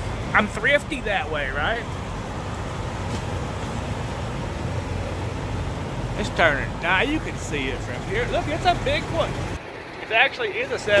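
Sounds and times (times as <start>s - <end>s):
diesel truck engines idling: 0.0s - 11.0s.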